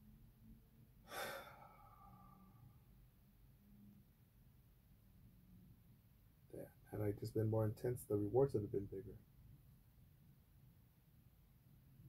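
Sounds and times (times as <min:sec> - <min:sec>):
person sighing: 0:01.1 - 0:02.5.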